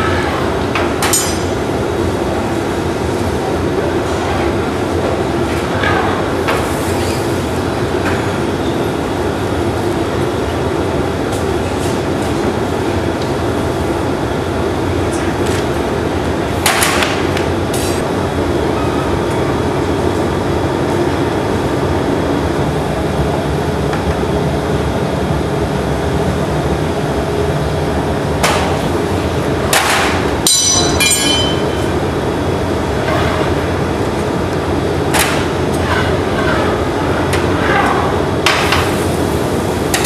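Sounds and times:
gas furnace roaring: 0.0 - 40.0.

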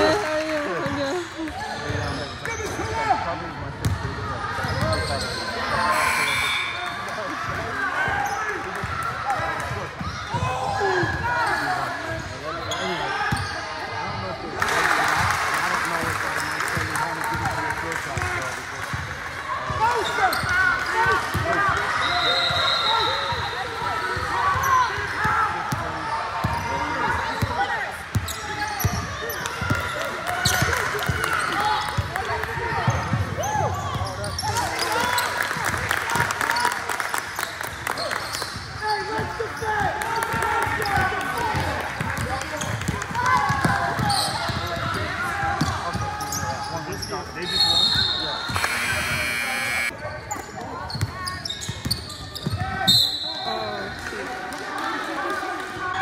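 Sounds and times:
sneakers squeaking on floor: 4.6 - 6.8, 11.4 - 13.7, 26.2 - 27.5, 28.1 - 30.7, 32.9 - 35.3, 44.0 - 53.5.

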